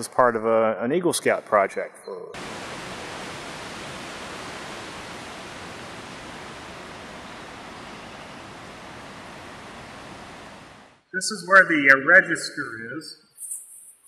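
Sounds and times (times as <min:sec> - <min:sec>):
steady hiss: 0:02.4 - 0:11.8.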